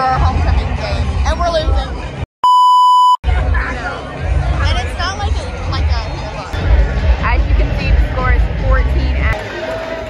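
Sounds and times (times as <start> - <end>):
electronic censor bleep: 2.4 - 3.2
crowd chatter: 3.2 - 10.0.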